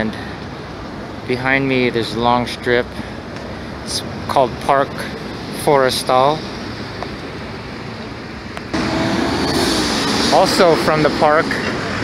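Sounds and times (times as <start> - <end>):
outdoor ambience: 0.0 - 12.0
street traffic: 0.0 - 12.0.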